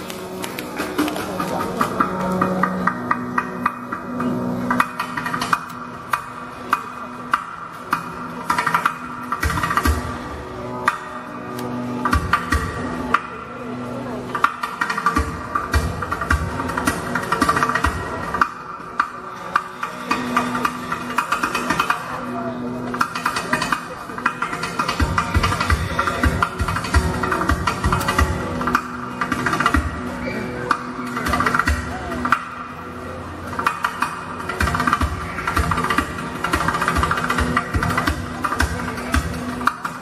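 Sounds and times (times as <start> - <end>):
handpan: 0.0 - 40.0.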